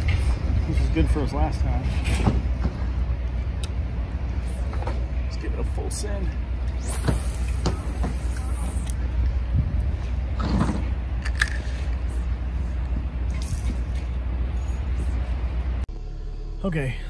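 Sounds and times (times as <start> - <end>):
wind rumble on microphone: 7.7 - 15.8.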